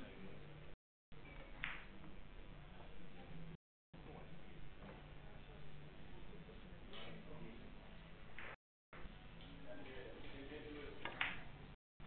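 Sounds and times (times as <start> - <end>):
murmur of distant voices: 2.4 - 8.4.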